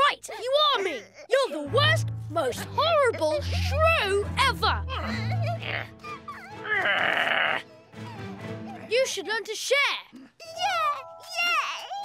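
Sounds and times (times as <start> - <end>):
soft background music: 1.4 - 9.3, 10.4 - 12.0
cartoon bleat-like vocal noise: 6.7 - 7.6.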